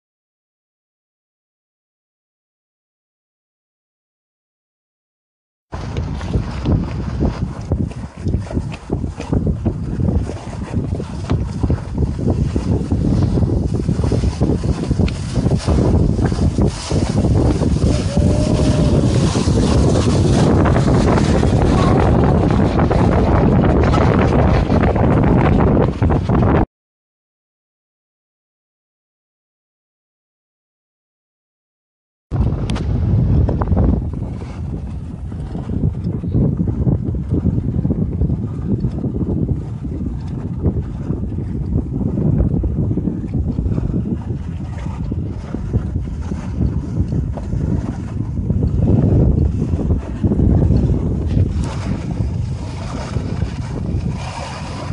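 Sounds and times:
water rushing past hull: 5.7 - 26.6, 32.3 - 54.9
gusty wind buffeting microphone: 5.7 - 26.7, 32.3 - 54.9.

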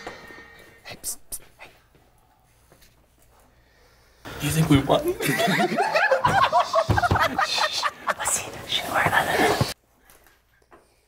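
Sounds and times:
group of people laughing: 5.0 - 8.2.

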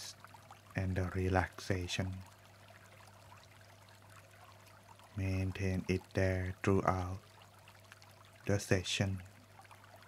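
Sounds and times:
flowing stream water: 0.0 - 10.0
low steady hum: 0.0 - 10.0.

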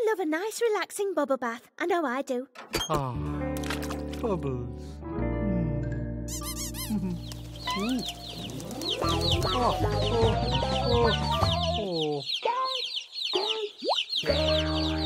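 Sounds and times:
light cartoon music: 2.6 - 12.0, 13.8 - 15.0
cartoon ducklings peeping: 6.3 - 15.0.

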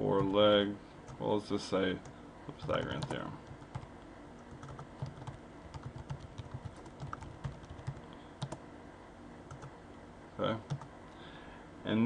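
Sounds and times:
typing on computer keyboard: 4.5 - 8.6, 10.7 - 10.9.

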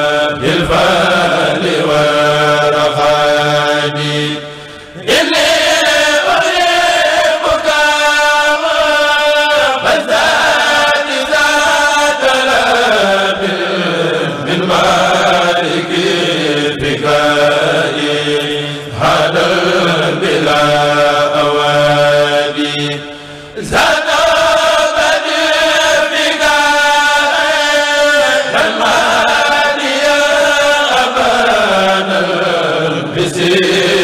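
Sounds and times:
men chanting into microphones: 0.0 - 34.0.

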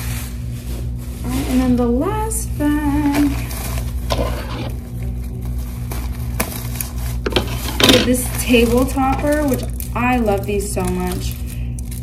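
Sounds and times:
plastic bag rustling: 2.8 - 12.0.

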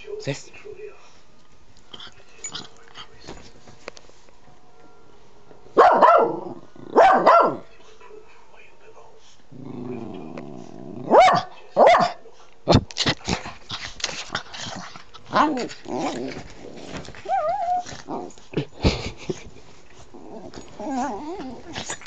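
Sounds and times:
small dog barking: 5.8 - 6.4, 7.0 - 7.7, 11.1 - 12.2
dog growling: 6.3 - 7.6, 9.5 - 11.2, 13.0 - 19.0, 20.1 - 22.0
fur rustling against microphone: 15.3 - 22.0.

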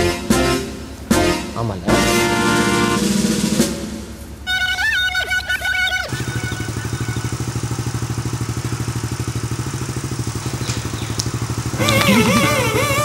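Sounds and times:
music: 0.0 - 6.0
motorcycle engine idling: 5.7 - 13.0.

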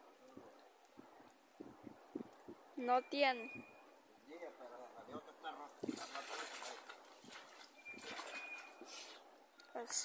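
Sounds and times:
net splashing onto water: 5.9 - 9.1
river water sloshing and splashing: 5.9 - 9.2.

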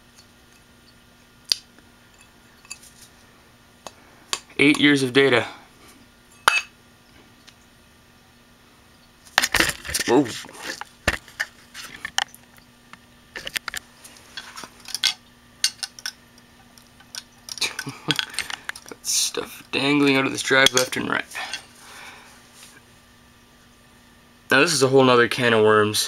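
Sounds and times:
metal parts clinking and knocking: 14.4 - 16.2, 16.8 - 19.0.

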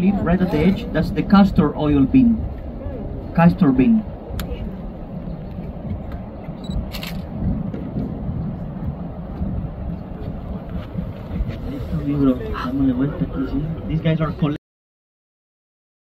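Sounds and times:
wind on microphone: 0.0 - 14.6.

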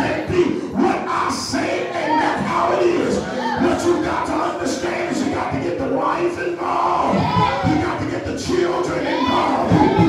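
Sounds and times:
congregation calling out: 0.0 - 10.0
preacher's amplified voice: 0.0 - 10.0.

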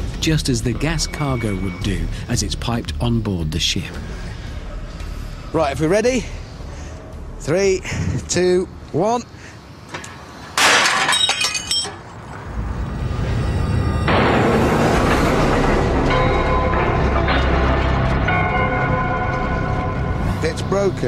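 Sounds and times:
steel shattering with metallic ringing: 10.6 - 12.0.

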